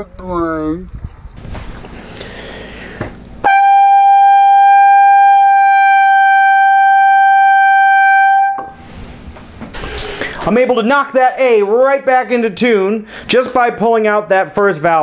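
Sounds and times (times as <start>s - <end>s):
trumpet holding high note: 3.4s - 8.8s.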